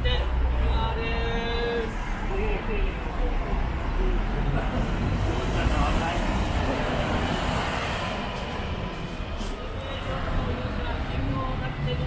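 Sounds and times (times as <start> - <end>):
low rumble of street traffic: 0.0 - 12.0.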